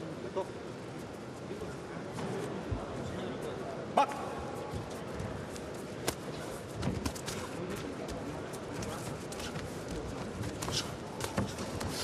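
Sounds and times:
footwork on ring canvas: 0.8s - 12.0s.

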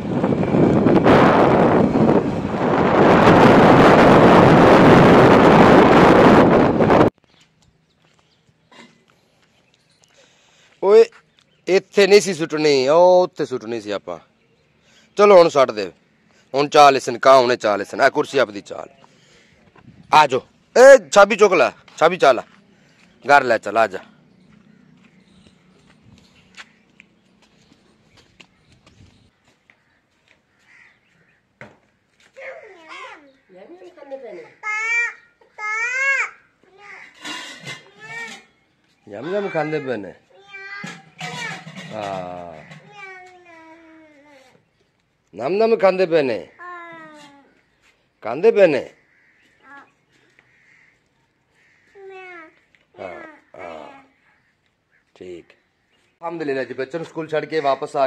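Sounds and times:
wind buffeting microphone: 0.0s - 7.2s, 19.7s - 20.3s, 24.8s - 26.7s, 28.3s - 29.3s
road noise: 0.0s - 7.6s, 10.2s - 34.0s
crow cawing faintly: 24.6s - 25.4s, 29.7s - 32.1s, 46.4s - 47.1s, 48.9s - 56.0s.

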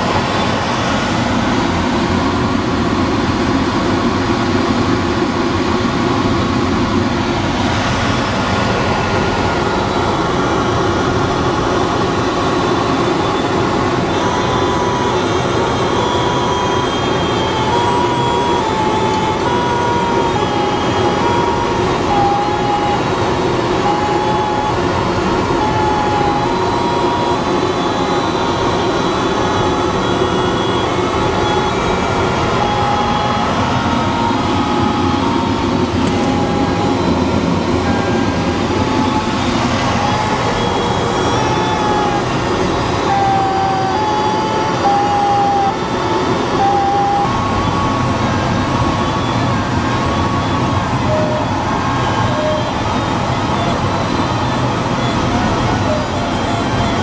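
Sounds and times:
variometer short beeps: 13.2s - 47.8s.

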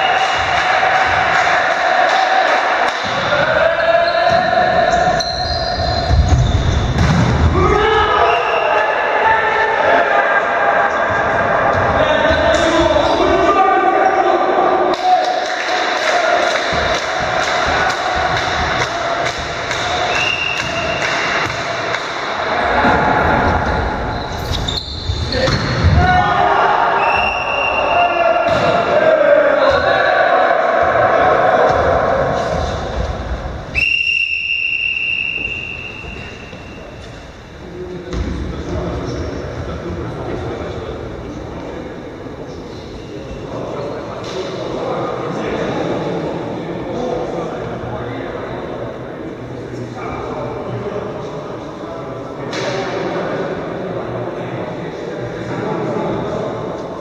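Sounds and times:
players shouting: 0.0s - 6.4s, 7.2s - 37.0s
volleyball thuds: 6.1s - 7.6s
referee whistle blast: 20.1s - 21.0s, 27.0s - 28.5s, 33.7s - 37.0s.

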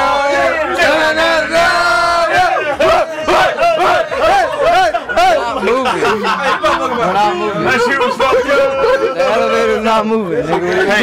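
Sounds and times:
men chanting and shouting: 0.0s - 11.0s.

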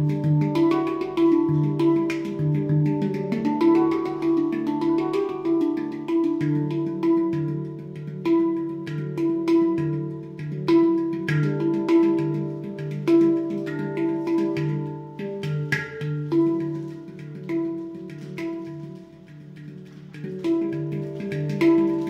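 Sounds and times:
handpan notes ringing: 0.0s - 22.0s.

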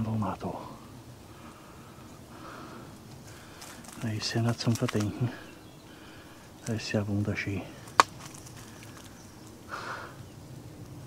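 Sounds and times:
faint crackles: 0.0s - 11.0s
reeds rustling: 0.7s - 11.0s
footsteps through dry reeds: 3.1s - 5.5s, 7.7s - 9.6s
wood snapping: 3.1s - 6.8s, 7.6s - 9.6s.

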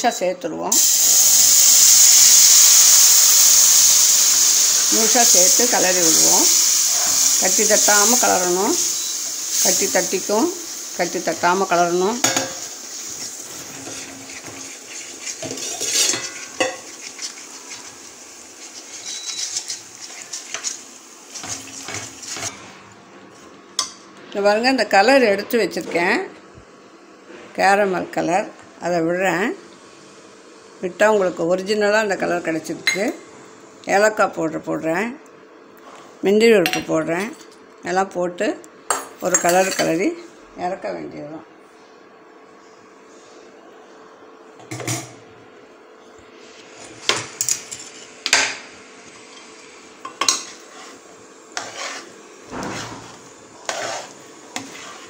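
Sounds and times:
woman speaking: 0.0s - 0.8s, 4.9s - 6.5s, 7.4s - 8.8s, 9.6s - 12.3s, 24.3s - 26.4s, 27.6s - 29.6s, 30.8s - 33.2s, 33.9s - 35.2s, 36.2s - 38.6s, 39.2s - 41.5s
metal ladle scraping metal pan: 12.2s - 18.0s, 18.6s - 22.5s, 51.6s - 55.0s.

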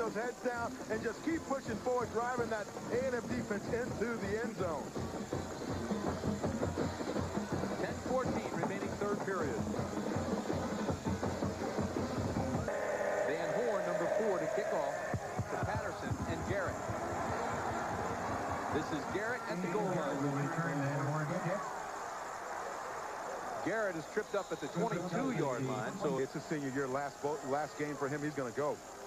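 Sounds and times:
crowd noise: 0.0s - 29.0s
marching band music with drums: 1.6s - 12.9s, 13.8s - 19.5s.

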